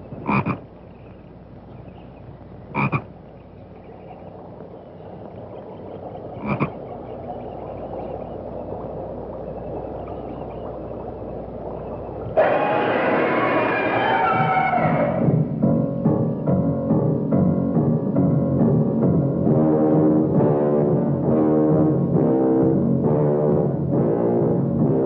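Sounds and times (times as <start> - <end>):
frogs croaking: 0.0 - 19.6
loud burst of music: 12.4 - 15.7.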